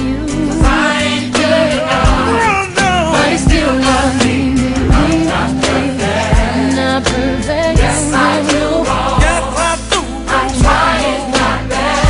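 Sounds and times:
person singing gospel song: 0.0s - 12.0s
steady drum beat: 0.6s - 12.0s
held bass notes: 1.6s - 8.8s.

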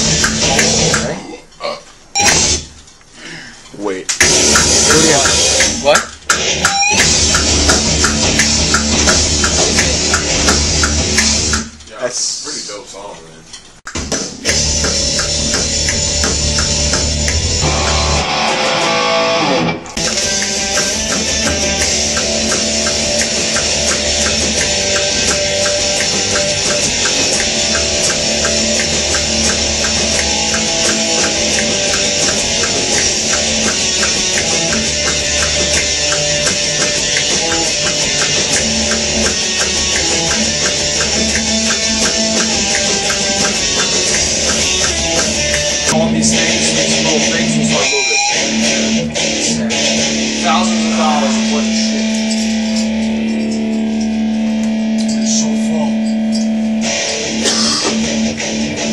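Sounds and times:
steady drum beat: 0.0s - 1.2s, 2.2s - 2.7s, 4.2s - 11.9s, 13.9s - 19.2s, 20.0s - 52.3s, 56.8s - 58.9s
electric guitar riffing: 0.0s - 2.7s, 4.2s - 11.8s, 14.4s - 58.9s.

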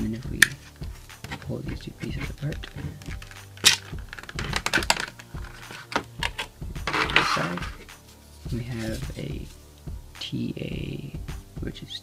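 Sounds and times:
plastic packaging clicks and crackles: 2.6s - 7.6s
loud plastic snap: 3.0s - 7.8s.

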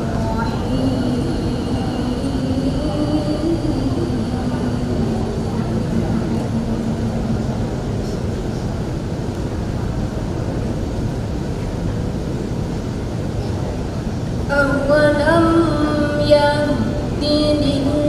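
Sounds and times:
woman's melodic recitation: 0.0s - 7.0s, 14.5s - 18.0s
low rumble of room noise: 0.0s - 18.0s.

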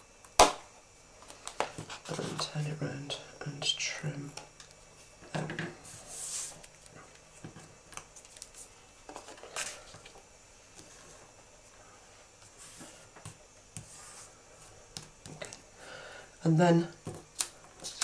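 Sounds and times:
paper sliding and rubbing: 5.9s - 6.7s, 13.8s - 14.4s
paper clicks and rustles: 7.9s - 9.9s.

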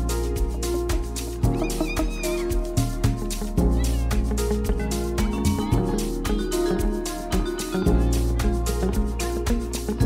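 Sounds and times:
dance music with log-drum bass: 0.0s - 10.0s
gliding high-pitched cries: 1.5s - 4.5s.

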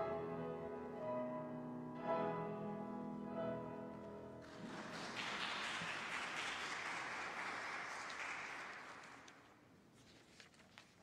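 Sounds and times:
congregation clapping: 4.4s - 9.7s.

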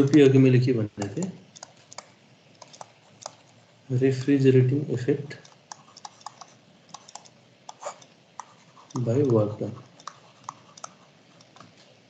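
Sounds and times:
computer tapping clicks: 0.0s - 0.4s, 1.0s - 3.5s, 5.4s - 11.8s.

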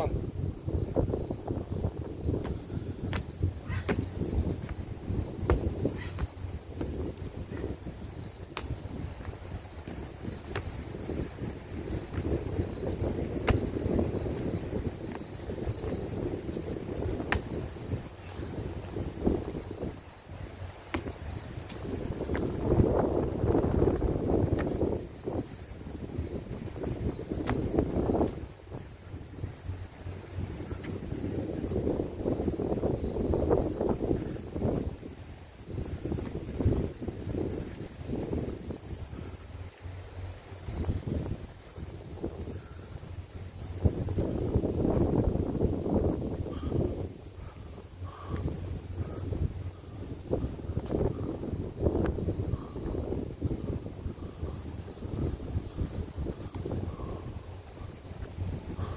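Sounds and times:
wind buffeting microphone: 0.0s - 58.9s.

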